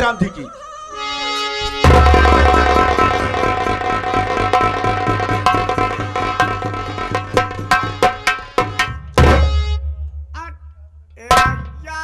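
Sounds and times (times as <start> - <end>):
hand drum rhythm: 1.8 - 10.6, 11.2 - 12.0.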